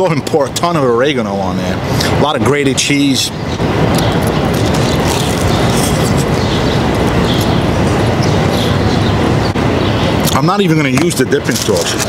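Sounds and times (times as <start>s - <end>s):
city street noise: 0.0s - 12.0s.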